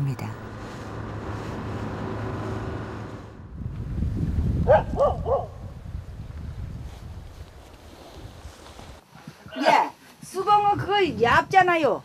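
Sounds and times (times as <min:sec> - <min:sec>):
boat motor droning: 0:00.0 - 0:03.8
wind rumbling on microphone: 0:00.4 - 0:09.6, 0:10.5 - 0:12.0.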